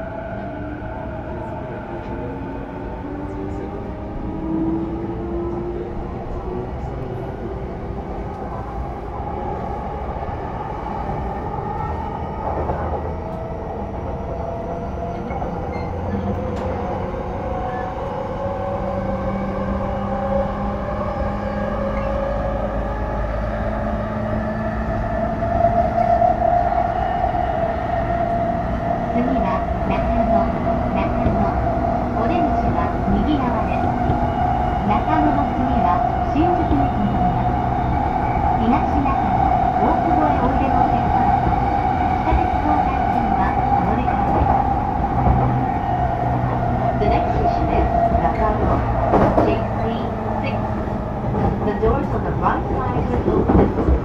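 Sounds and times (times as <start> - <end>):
rail rumble: 0.0 - 54.0.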